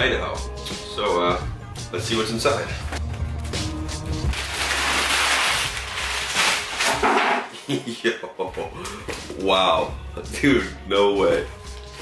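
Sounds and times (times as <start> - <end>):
packing tape tearing: 4.3 - 7.5.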